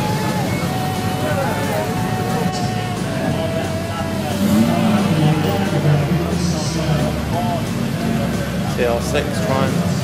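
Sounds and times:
car engines running at low revs: 0:00.0 - 0:10.0
crowd chatter: 0:00.0 - 0:10.0.

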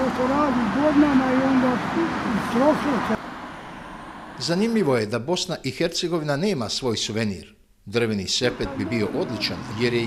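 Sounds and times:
road traffic noise: 0:00.0 - 0:05.3, 0:08.4 - 0:10.0
man talking: 0:04.4 - 0:10.0.

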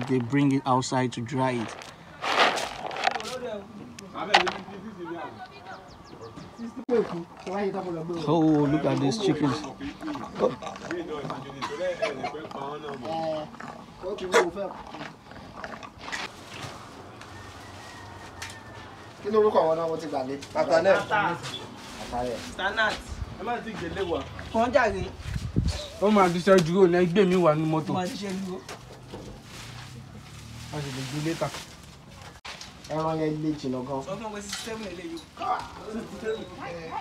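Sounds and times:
people talking: 0:00.0 - 0:01.8, 0:03.0 - 0:14.8, 0:19.3 - 0:28.7.

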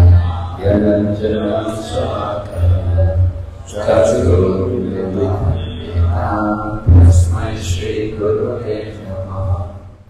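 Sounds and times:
person chanting prayers melodically: 0:00.0 - 0:10.0.

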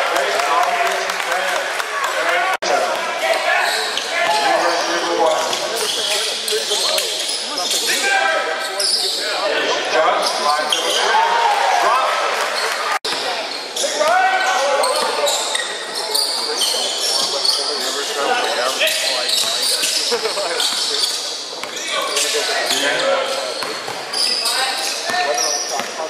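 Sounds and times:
players calling out: 0:01.8 - 0:26.0
sneakers squeaking: 0:03.2 - 0:09.4, 0:10.2 - 0:11.1, 0:12.4 - 0:26.0.

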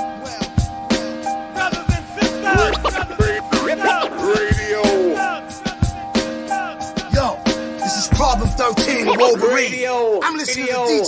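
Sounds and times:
man rapping over a beat: 0:00.0 - 0:00.6, 0:01.5 - 0:11.0.

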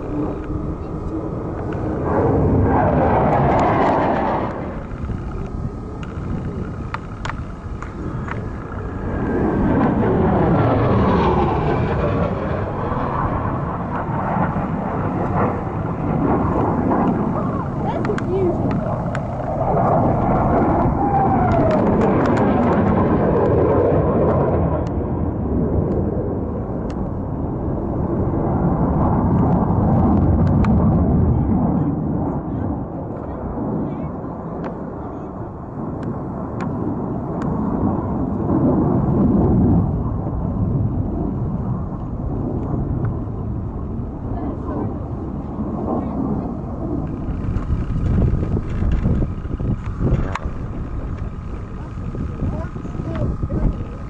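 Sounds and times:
jet engines rumbling: 0:00.0 - 0:54.0
jet whine: 0:00.0 - 0:54.0.

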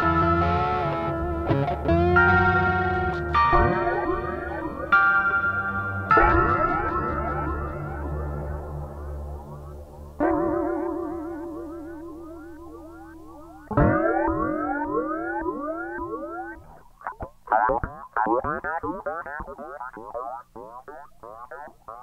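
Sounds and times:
effects-laden electric guitar: 0:00.0 - 0:22.0.

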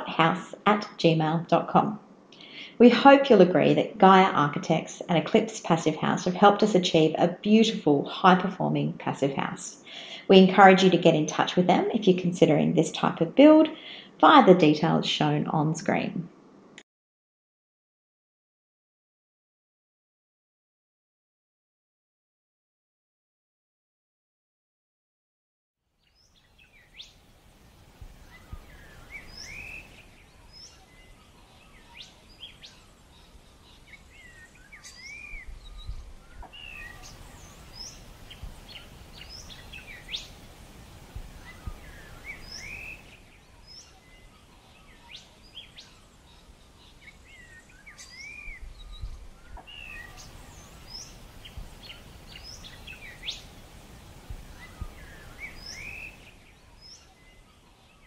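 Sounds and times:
birds chirping and whistling: 0:28.2 - 0:57.4.

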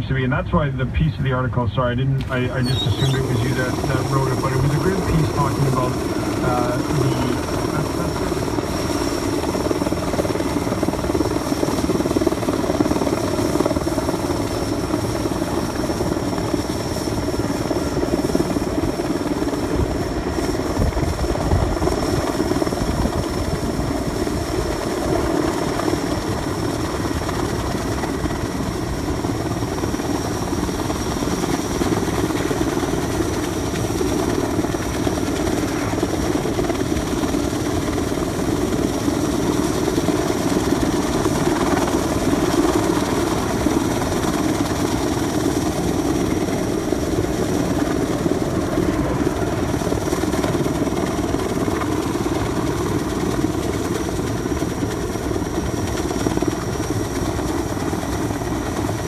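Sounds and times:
helicopter rotor noise: 0:00.0 - 0:59.0
high turbine whine: 0:00.0 - 0:59.0.

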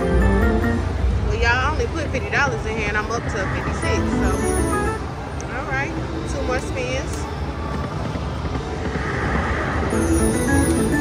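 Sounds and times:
slot machine bonus music: 0:00.0 - 0:00.9, 0:09.9 - 0:11.0
casino crowd chatter: 0:00.0 - 0:11.0
rising and falling chimes: 0:09.8 - 0:11.0.

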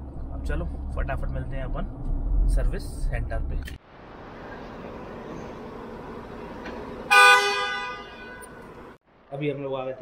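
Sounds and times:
car horn toot: 0:07.1 - 0:08.9.

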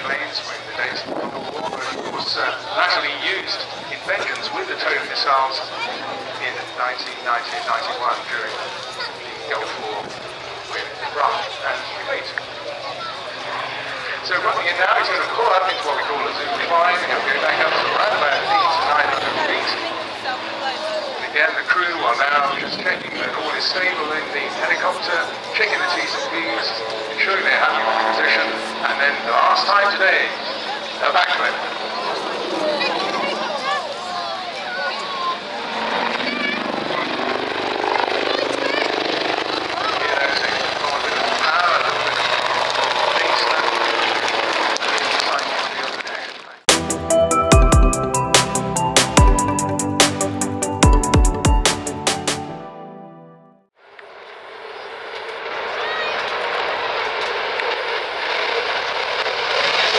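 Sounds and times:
helicopter rotor blades beating: 0:00.0 - 0:52.4, 0:54.1 - 0:59.9
indistinct voices talking: 0:00.0 - 0:52.4.

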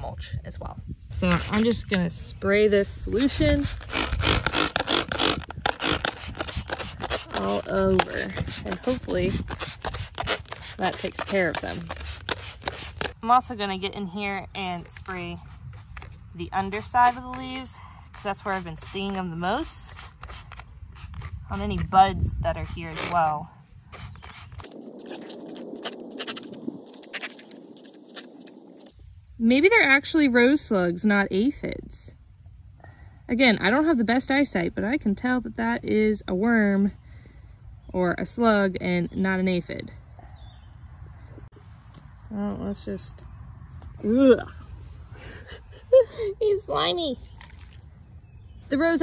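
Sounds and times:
leaves and stems rustling: 0:03.2 - 0:13.2, 0:23.9 - 0:28.9
trigger spray bottle squirting: 0:03.2 - 0:13.2, 0:19.9 - 0:21.7, 0:23.9 - 0:24.8.

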